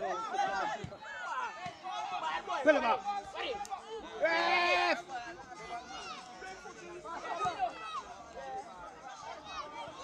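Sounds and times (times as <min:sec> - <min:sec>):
voices shouting and chattering: 0:00.0 - 0:10.0.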